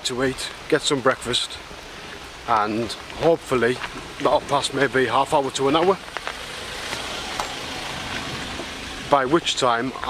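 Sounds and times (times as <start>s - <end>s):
rain falling: 0.0s - 10.0s
raindrops ticking on umbrella: 5.7s - 8.8s.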